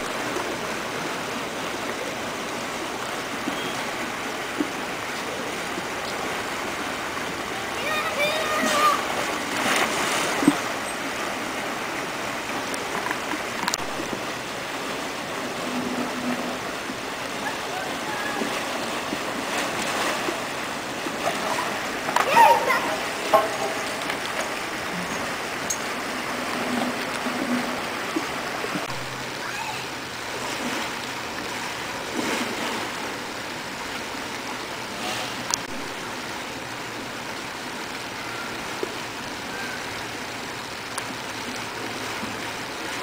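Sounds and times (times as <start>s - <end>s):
water pouring into pool: 0.0s - 43.0s.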